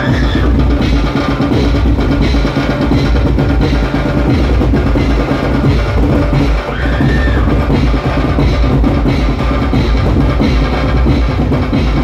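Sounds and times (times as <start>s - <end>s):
band music through loudspeakers: 0.0s - 12.0s
heavy drum beat: 0.0s - 12.0s
bass thump: 0.3s - 12.0s.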